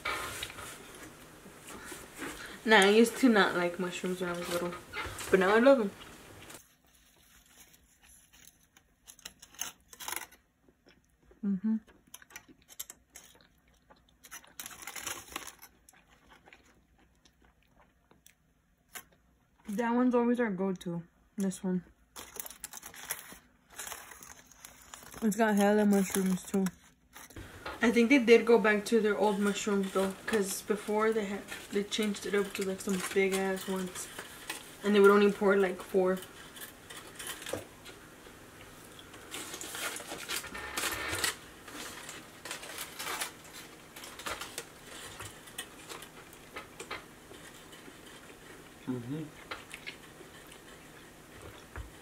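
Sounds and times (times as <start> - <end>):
foil wrapper crinkling: 6.5 - 10.5, 12.2 - 16.8, 22.1 - 27.4, 28.6 - 38.0, 39.0 - 48.4.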